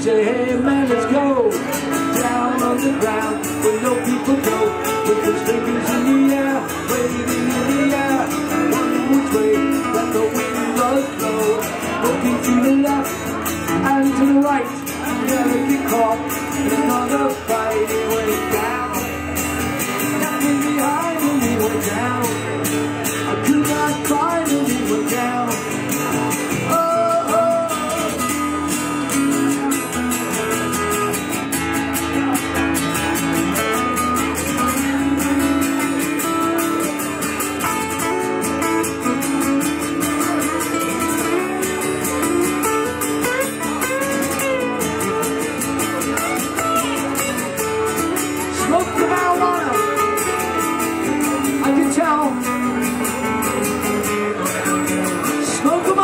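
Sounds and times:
acoustic guitars strumming chords: 0.0 - 56.0
sliding guitar lead line: 0.0 - 56.0.

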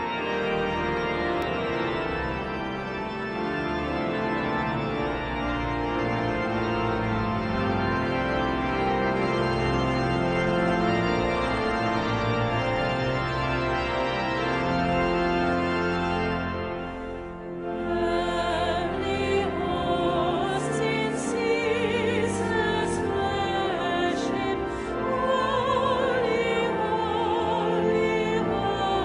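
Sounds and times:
pipe organ playing held chords: 0.0 - 29.0.

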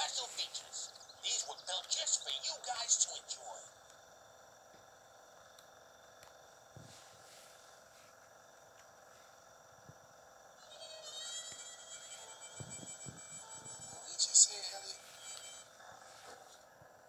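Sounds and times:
high chittering pattern: 10.6 - 15.7.

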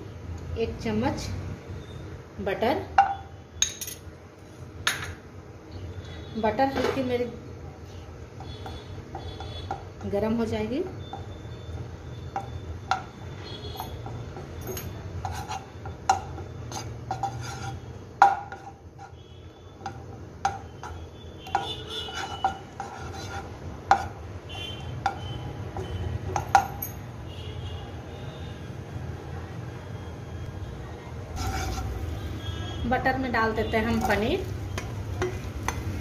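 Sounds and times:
spatula tapping and scraping pan: 8.4 - 26.8, 31.4 - 32.0, 33.9 - 36.0.

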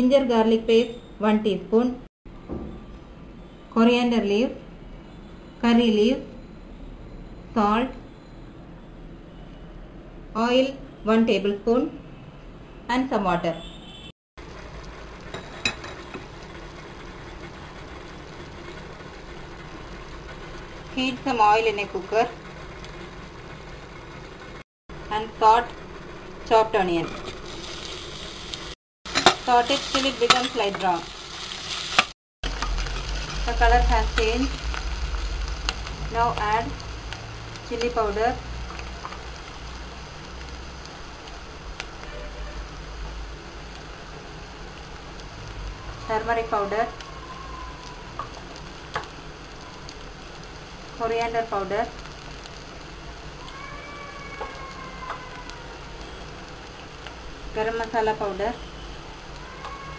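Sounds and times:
onion sizzling in hot oil: 14.4 - 59.9.

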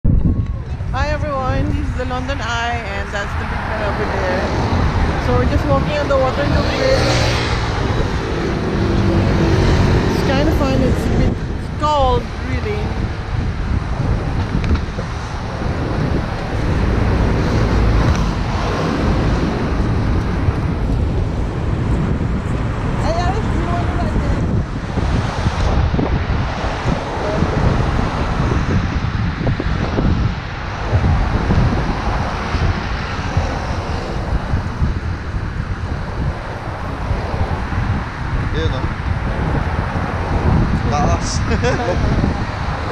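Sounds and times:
wind buffeting microphone: 0.0 - 42.9
cars passing close by: 0.2 - 42.9.

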